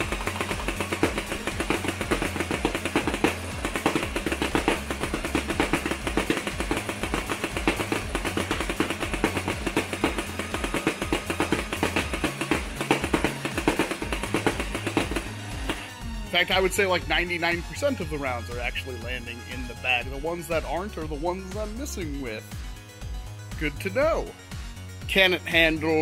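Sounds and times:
toy blaster firing rapidly: 0.0 - 15.8
foam rounds hitting mesh: 0.0 - 15.9
blaster motor running: 0.0 - 16.0
background music with bass: 0.0 - 26.0.

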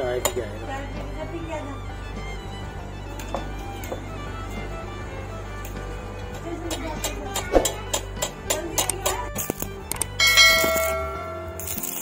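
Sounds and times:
background music: 0.0 - 12.0
bell-like chime: 10.2 - 12.0.

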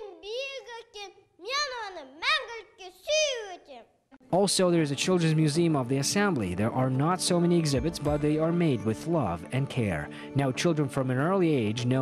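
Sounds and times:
girl reciting a poem: 0.0 - 4.2.

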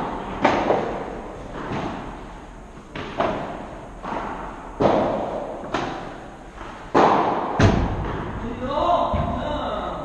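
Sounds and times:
man calling out: 8.4 - 10.0.

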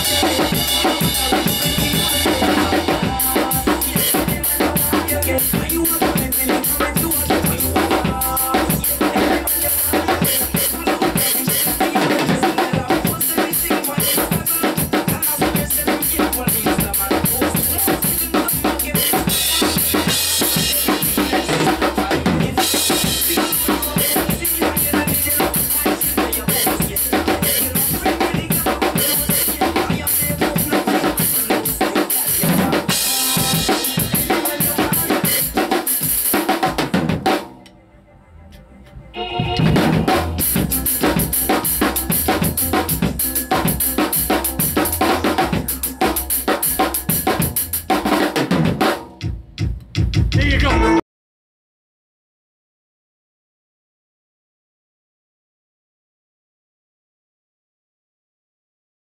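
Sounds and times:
drum kit playing reggae groove: 0.0 - 37.8, 38.8 - 51.0
recorded backing track: 0.0 - 51.0.

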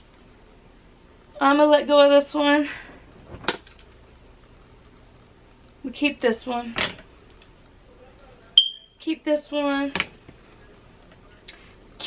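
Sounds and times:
high-pitched electronic beep: 8.6 - 8.9.

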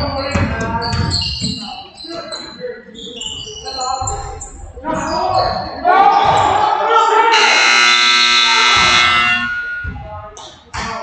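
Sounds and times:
spectators shouting and cheering: 5.2 - 9.9
scoreboard buzzer: 7.3 - 9.8.

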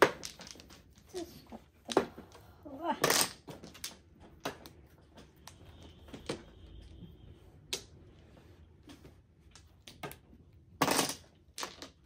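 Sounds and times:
mahjong tiles clacking: 0.0 - 6.9, 9.4 - 12.0.

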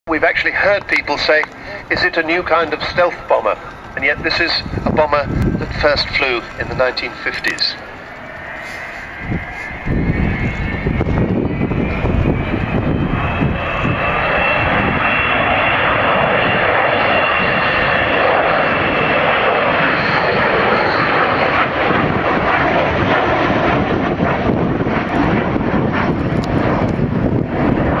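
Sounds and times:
jet engines roaring: 0.1 - 28.0
high whine falling in pitch: 0.9 - 18.9.

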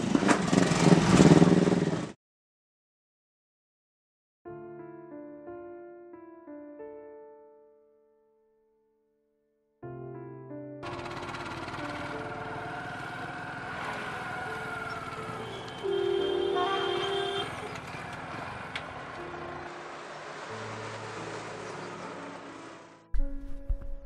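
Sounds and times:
road traffic noise: 0.0 - 2.2, 10.8 - 23.1
background music: 9.8 - 24.0
vehicle horn honking: 14.9 - 18.0.

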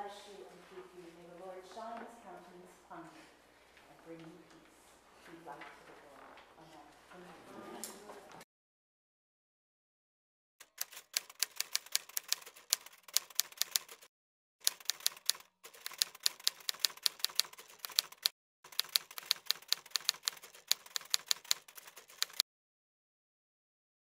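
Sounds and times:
rapid keyboard key clicks: 10.6 - 22.4.

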